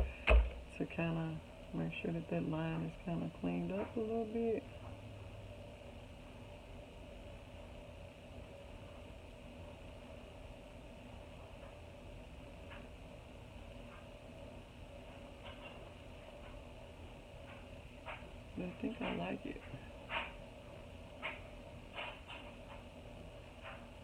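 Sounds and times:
faint hum: 0.0s - 24.0s.

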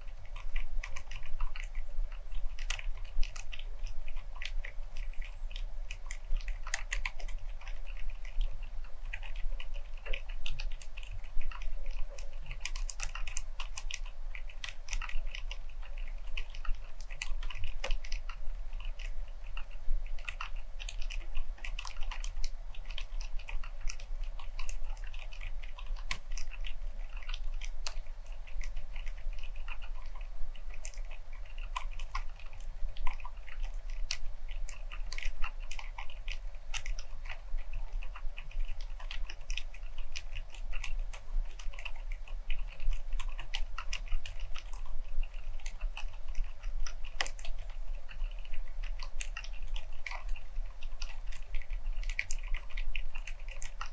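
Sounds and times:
quiet mechanical keyboard typing: 0.0s - 53.9s.

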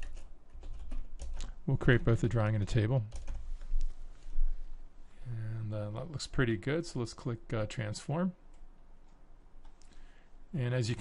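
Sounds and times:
computer keyboard typing: 0.0s - 1.6s, 3.1s - 3.4s.

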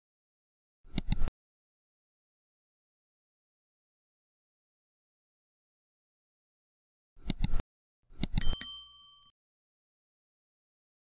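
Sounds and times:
sharp mouse clicks: 0.9s - 1.3s, 7.2s - 7.6s, 8.2s - 8.5s
bright bell ding: 8.4s - 9.3s.

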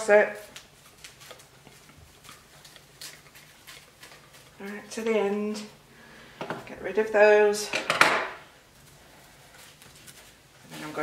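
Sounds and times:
plastic film crinkling: 0.3s - 5.6s.

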